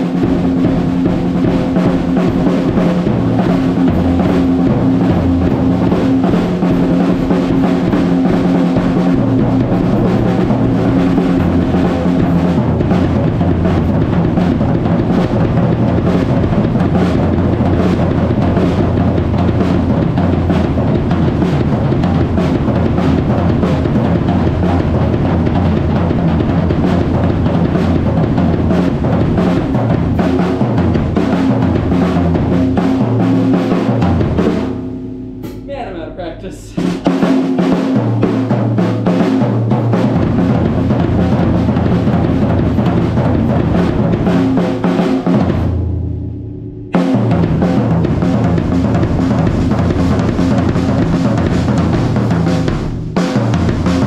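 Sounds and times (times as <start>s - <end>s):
drum kit played hard: 0.0s - 54.0s.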